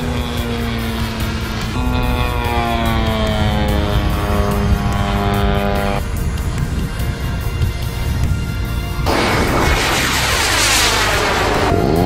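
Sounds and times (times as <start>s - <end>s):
model airplane engine droning: 0.0s - 6.5s
held droning tone: 0.0s - 6.6s
background music: 0.0s - 12.0s.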